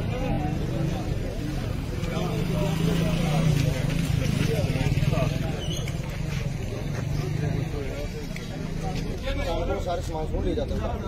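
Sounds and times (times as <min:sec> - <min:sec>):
men talking indistinctly: 0:00.0 - 0:11.0.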